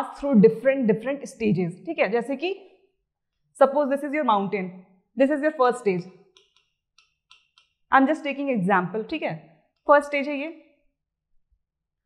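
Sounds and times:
stylus tapping on screen: 6.1 - 7.9.

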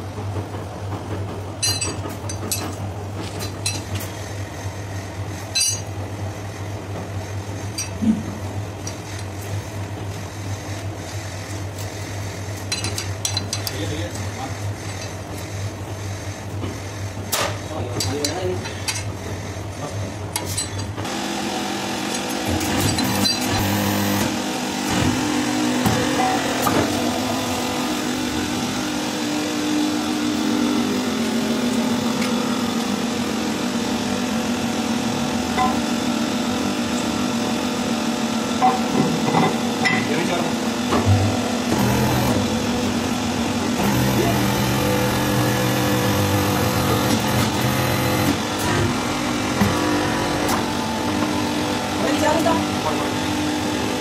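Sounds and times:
hydraulic press humming: 0.0 - 54.0.

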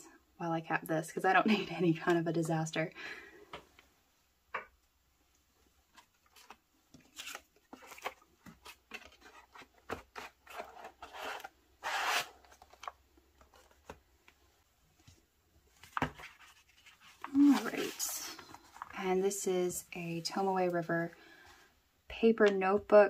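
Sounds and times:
cardboard scraping rustles: 6.3 - 13.9, 15.9 - 19.0.

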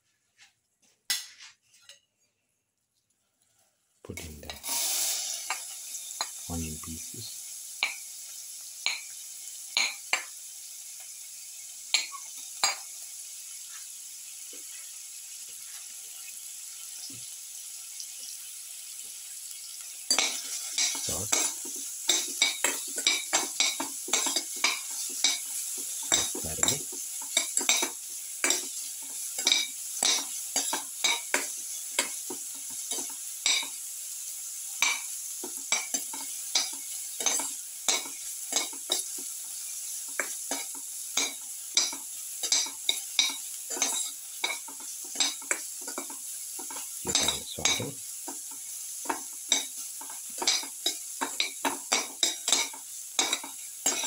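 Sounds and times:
shallots sizzling in a pan: 3.0 - 54.0
spoon scraping and clinking on pan: 11.9 - 12.9, 20.1 - 33.8, 34.8 - 39.2, 40.0 - 54.0.

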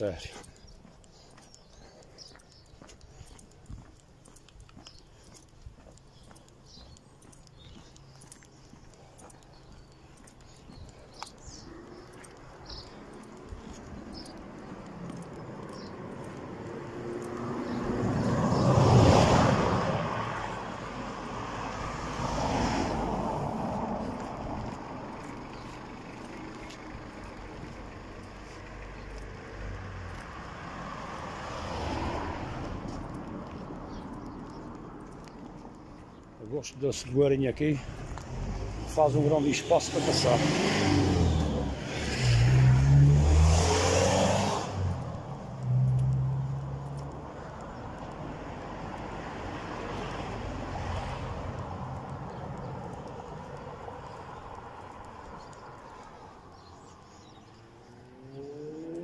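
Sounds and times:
footsteps clicking: 0.0 - 18.8, 22.9 - 41.8, 44.7 - 59.0
cars driving past: 0.0 - 59.0.

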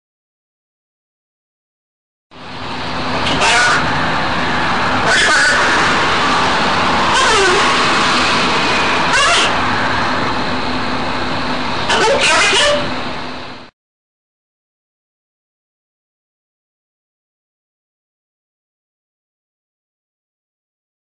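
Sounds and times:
loud steady rushing noise: 2.3 - 13.7
low hum: 2.3 - 13.7.

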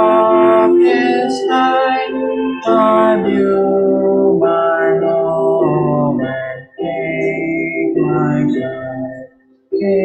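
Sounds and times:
hymn sung with instruments: 0.0 - 10.0.

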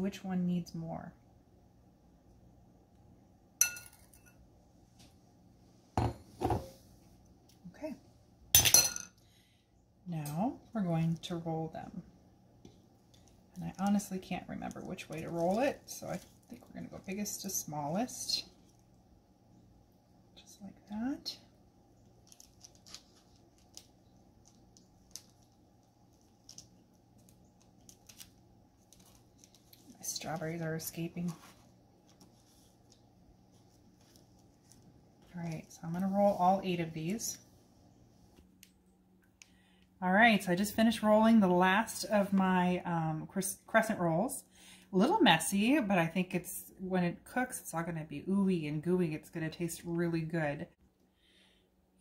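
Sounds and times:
low steady hum: 0.0 - 52.0
metal spoon clink: 3.6 - 4.4
soft handling clicks and rustles: 22.0 - 36.6.

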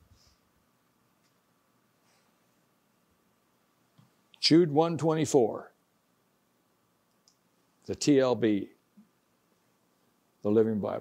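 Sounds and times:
man speaking: 4.4 - 5.8, 7.9 - 8.8, 10.4 - 11.0.

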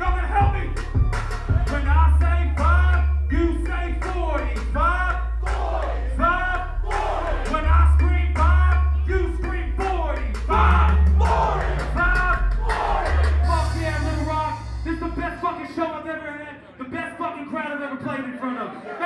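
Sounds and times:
heavy bass beat: 0.0 - 16.3
person shouting and chanting: 10.5 - 14.5.

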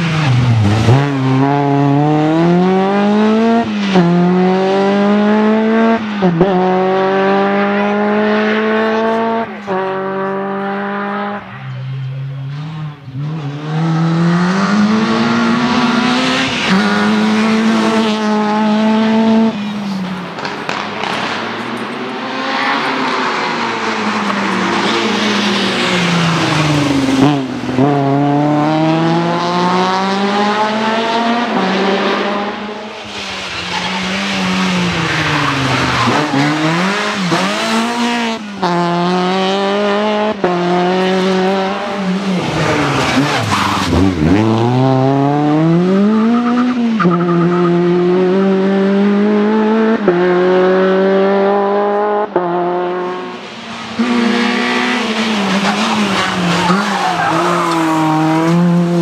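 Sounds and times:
rally car engine revving: 0.0 - 59.0.

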